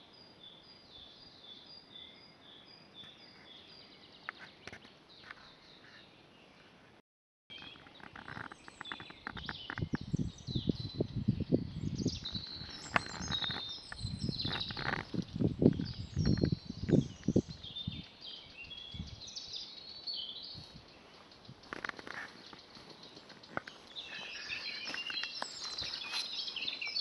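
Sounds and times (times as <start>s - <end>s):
small birds chirping: 0.0s - 6.9s, 7.5s - 27.0s.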